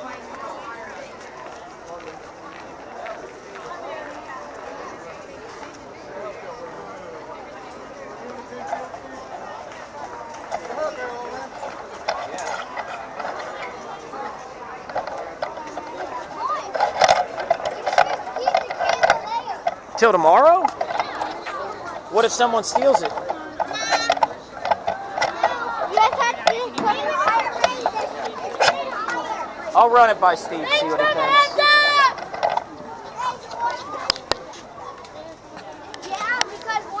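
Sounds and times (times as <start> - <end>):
children calling and chattering: 0.0 - 37.0
people talking indistinctly: 0.0 - 37.0.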